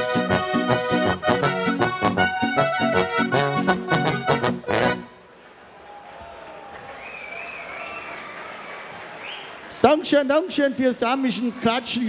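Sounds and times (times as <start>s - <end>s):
audience applauding: 5.4s - 10.0s.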